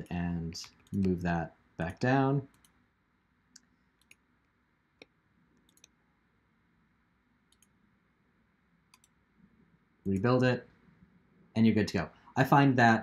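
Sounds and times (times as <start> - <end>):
computer mouse clicks: 0.0 - 1.2, 2.5 - 2.8, 3.5 - 4.3, 5.0 - 6.0, 7.5 - 7.8, 8.9 - 9.2.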